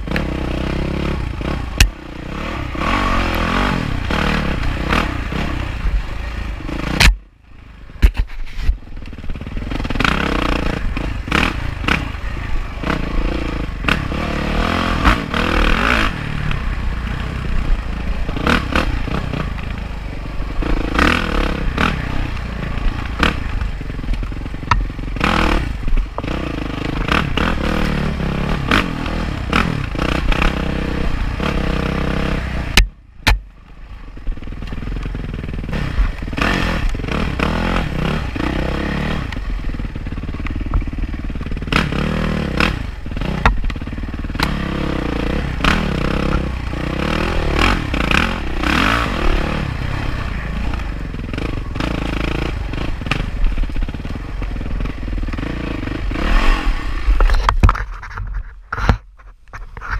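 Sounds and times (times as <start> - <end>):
dirt bike engine revving: 0.0 - 8.0, 9.0 - 57.4.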